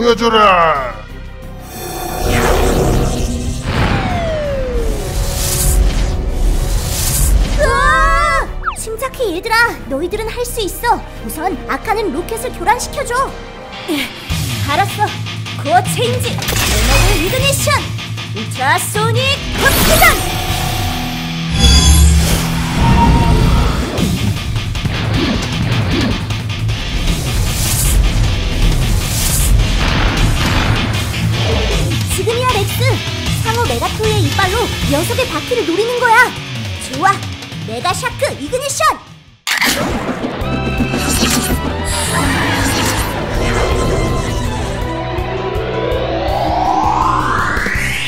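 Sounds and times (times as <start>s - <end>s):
background music: 0.0s - 48.0s
rocket whooshes with falling whistle: 2.2s - 5.8s.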